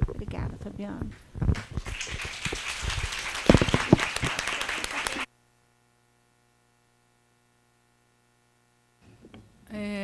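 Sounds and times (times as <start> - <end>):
people applauding: 1.5 - 5.3.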